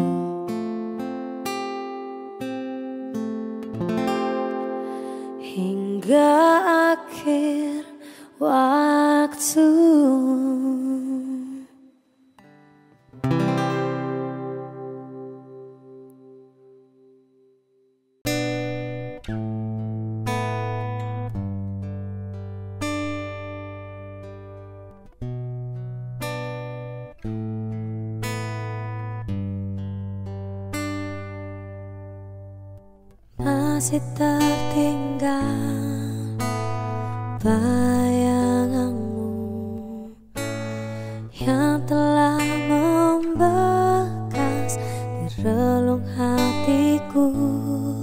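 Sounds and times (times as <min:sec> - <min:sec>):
person singing: 0:00.0 - 0:00.6, 0:04.5 - 0:11.8, 0:33.4 - 0:36.4, 0:37.0 - 0:40.3, 0:41.3 - 0:48.0
acoustic guitar: 0:00.0 - 0:48.0.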